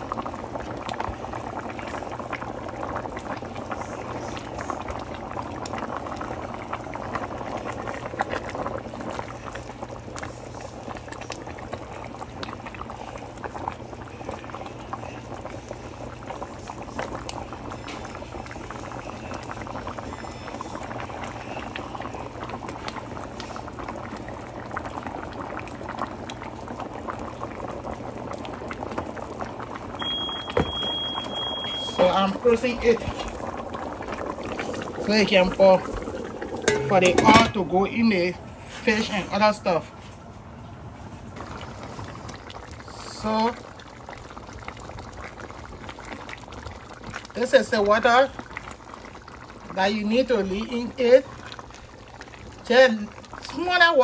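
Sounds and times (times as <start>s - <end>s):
soup boiling with bubbling pops: 0.0s - 39.6s, 41.1s - 54.0s.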